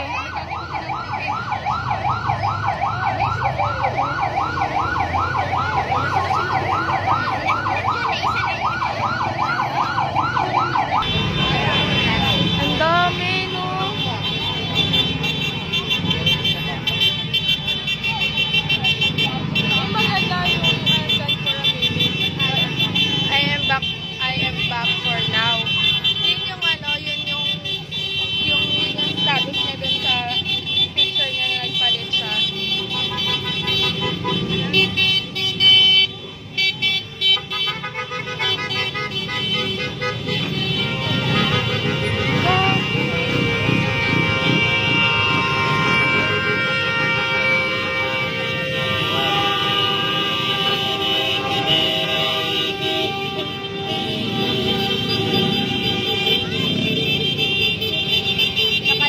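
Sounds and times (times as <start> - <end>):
voices and calls: 0.0 - 59.0.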